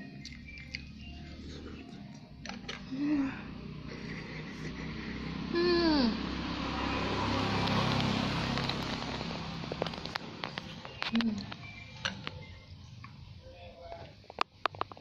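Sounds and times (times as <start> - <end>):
woman humming mm: 5.5 - 6.2.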